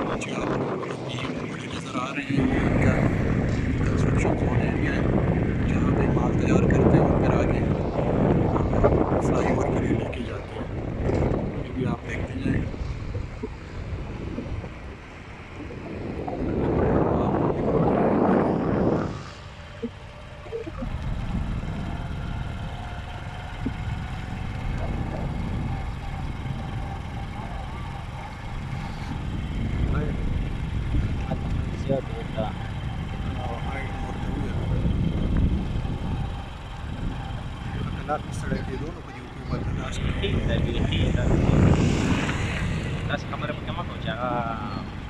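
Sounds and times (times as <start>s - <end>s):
wind rushing over microphone: 0.0s - 45.0s
motorcycle engine running: 2.2s - 45.0s.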